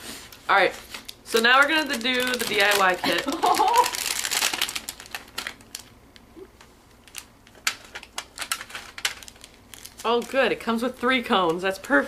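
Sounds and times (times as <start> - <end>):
plastic and paper packaging crinkling: 0.1 - 6.0, 7.0 - 12.0.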